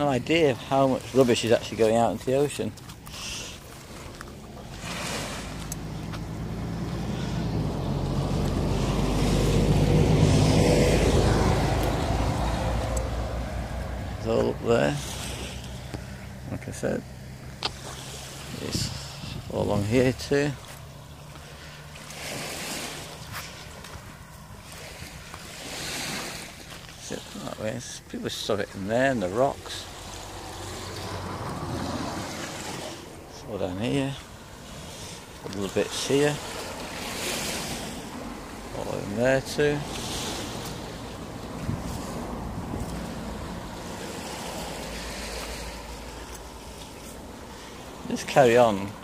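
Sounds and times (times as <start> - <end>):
waves washing onto shingle beach: 0.0 - 16.2, 17.6 - 49.0
calm sea at shore: 0.0 - 49.0
wind buffeting microphone: 18.7 - 20.1, 40.1 - 44.9.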